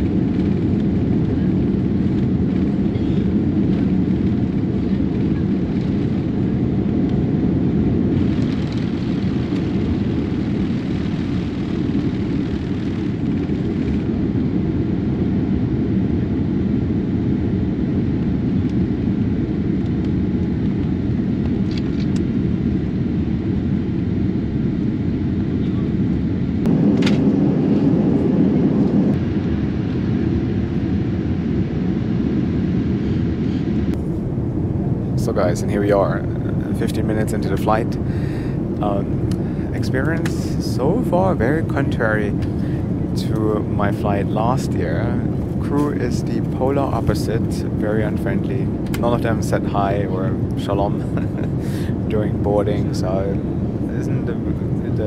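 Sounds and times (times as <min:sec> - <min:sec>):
jet engine cabin rumble: 0:00.0 - 0:55.0.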